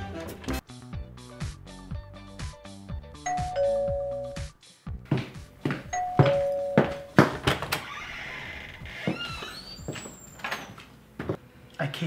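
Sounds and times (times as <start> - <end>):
background music with beat: 0.0 - 6.5
two-tone doorbell chime: 3.3 - 4.5, 5.9 - 7.2.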